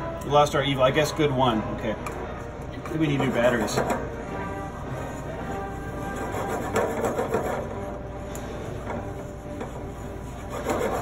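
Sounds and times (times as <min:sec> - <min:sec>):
background music: 0:00.0 - 0:11.0
chopsticks scraping a skillet: 0:04.8 - 0:11.0.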